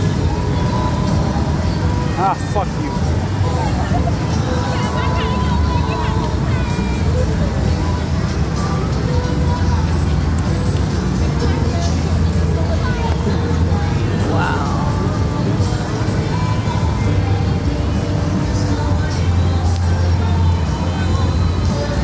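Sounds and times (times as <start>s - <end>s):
background music: 0.0s - 22.0s
background voices: 0.0s - 22.0s
traffic rumble: 0.0s - 22.0s.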